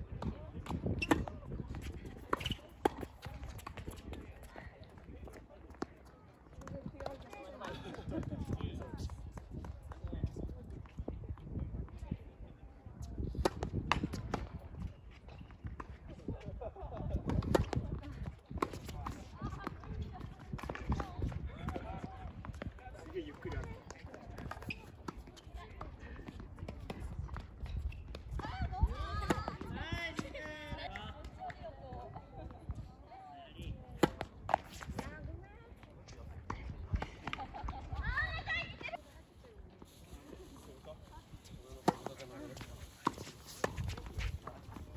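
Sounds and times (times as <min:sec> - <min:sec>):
tennis ball bouncing on court: 0:00.2 - 0:10.0, 0:13.4 - 0:14.6, 0:17.4 - 0:32.1, 0:34.0 - 0:35.1, 0:36.5 - 0:37.7, 0:41.3 - 0:44.9
tennis ball struck by rackets: 0:00.6 - 0:03.9, 0:34.0 - 0:35.1, 0:41.8 - 0:44.8
players' footsteps: 0:34.0 - 0:44.9.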